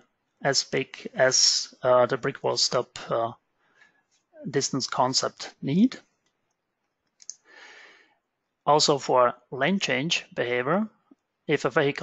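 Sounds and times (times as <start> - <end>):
soft intake of breath: 7.4 - 8.2.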